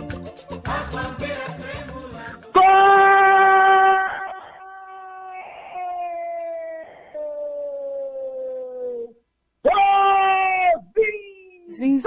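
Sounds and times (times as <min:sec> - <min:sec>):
loud held shout: 0:02.5 - 0:10.8.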